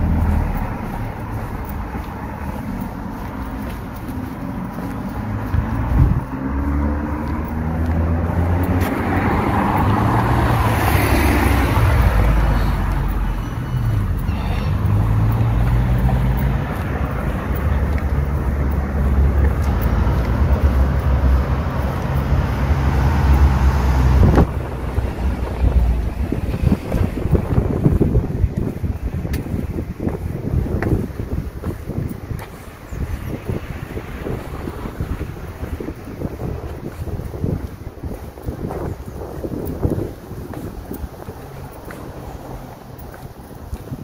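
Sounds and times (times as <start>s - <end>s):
street traffic: 0.0s - 44.0s
wind buffeting microphone: 0.0s - 44.0s.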